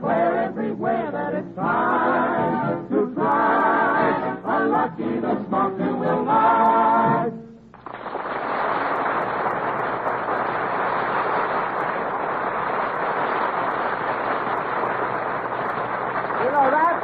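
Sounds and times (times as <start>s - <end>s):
audience applauding: 7.8s - 17.0s.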